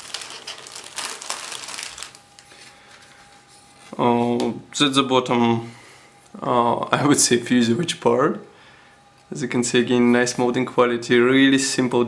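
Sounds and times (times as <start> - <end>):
plastic bag crinkling: 0.0 - 4.0.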